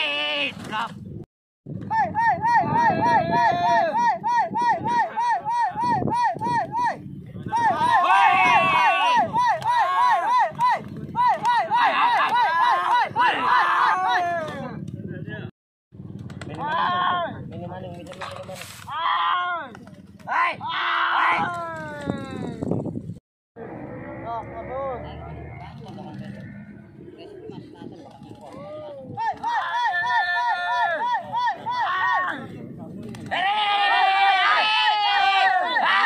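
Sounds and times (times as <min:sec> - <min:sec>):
men shouting drawn-out calls: 0:01.9 - 0:14.7, 0:29.1 - 0:32.4, 0:33.3 - 0:36.0.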